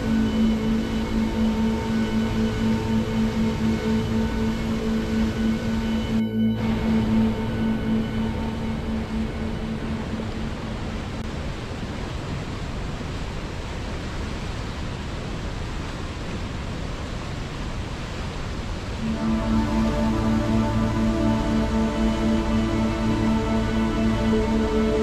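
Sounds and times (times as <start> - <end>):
calm music of held notes: 0.0 - 11.2, 19.0 - 25.0.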